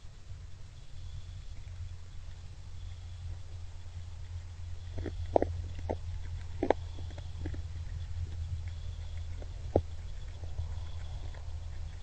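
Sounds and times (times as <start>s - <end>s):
low hum: 0.0s - 12.0s
deer crunching corn: 3.4s - 12.0s.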